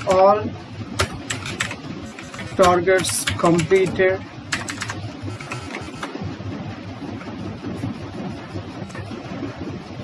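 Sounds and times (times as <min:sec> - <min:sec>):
low background rumble: 0:00.0 - 0:10.0
keyboard keys clicking: 0:01.0 - 0:05.0.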